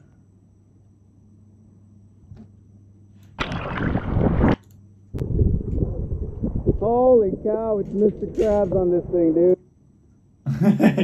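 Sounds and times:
water splash: 0:03.4 - 0:04.6.

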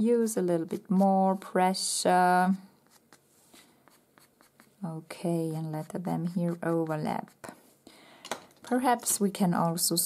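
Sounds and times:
woman speaking: 0:00.0 - 0:02.7, 0:04.8 - 0:07.6, 0:08.6 - 0:10.0
pencil scratching on paper: 0:00.6 - 0:01.4, 0:02.8 - 0:07.6.

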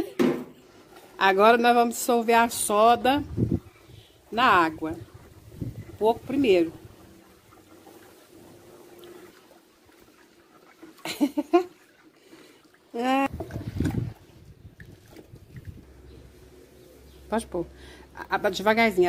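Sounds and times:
liquid swishing: 0:00.6 - 0:17.4.

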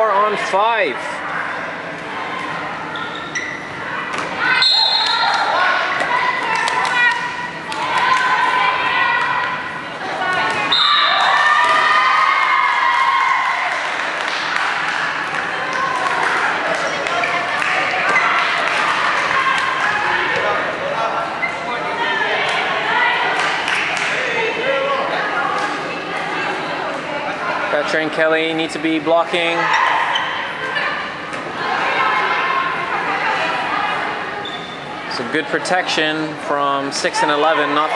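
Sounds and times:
players shouting: 0:04.3 - 0:26.6.

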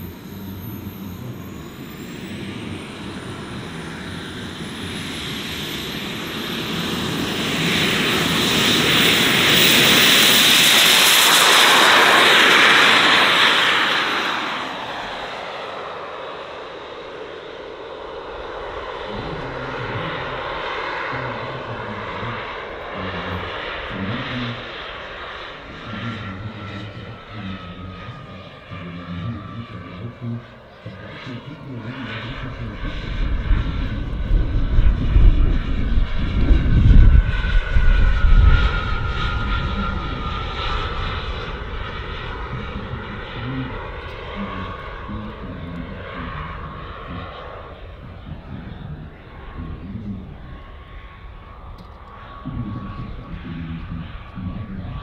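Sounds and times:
jet turbine whine and hiss: 0:00.0 - 0:55.0.

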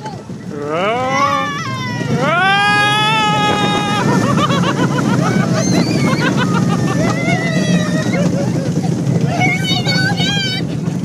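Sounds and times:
roller coaster rumbling on track: 0:00.0 - 0:11.0
riders shrieking and yelling: 0:00.4 - 0:11.0.

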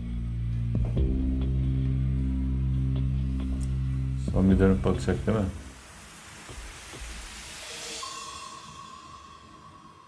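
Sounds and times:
rain hiss: 0:03.1 - 0:10.0
steady held tone: 0:07.6 - 0:10.0.

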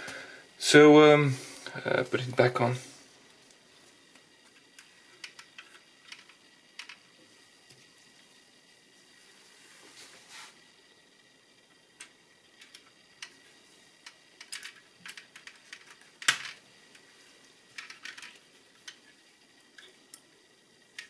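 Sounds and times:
plastic parts clicking: 0:04.8 - 0:07.0, 0:14.0 - 0:17.0, 0:17.8 - 0:19.1.

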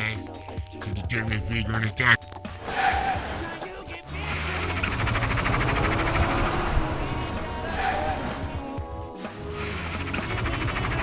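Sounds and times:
car engine running hard: 0:04.1 - 0:08.7, 0:09.5 - 0:11.0.

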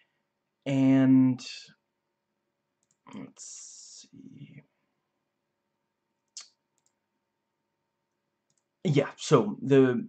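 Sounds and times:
man's voice: 0:08.9 - 0:10.0.

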